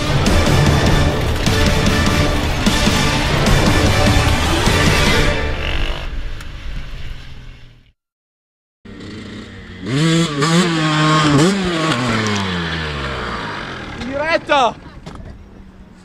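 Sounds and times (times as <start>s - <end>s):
music: 0.0s - 6.3s
dirt bike engine revving: 0.0s - 6.4s, 8.9s - 14.5s.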